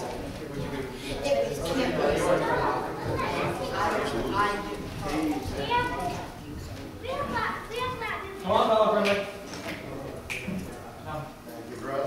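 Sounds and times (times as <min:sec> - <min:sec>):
people talking indistinctly: 0:00.0 - 0:12.0
children's voices: 0:00.4 - 0:08.5.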